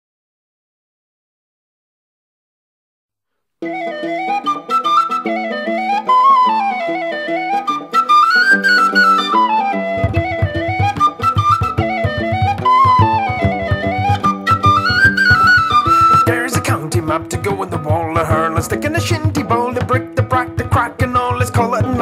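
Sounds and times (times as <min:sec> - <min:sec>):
tin whistle folk melody: 0:03.6 - 0:22.0
band with bass and drums: 0:09.9 - 0:16.6.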